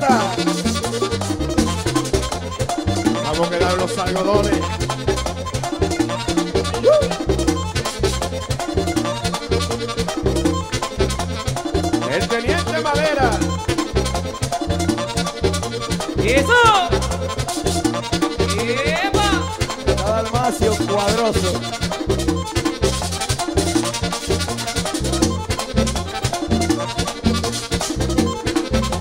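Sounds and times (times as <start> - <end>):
accordion runs: 0.0 - 29.0
bass and percussion rhythm: 0.0 - 29.0.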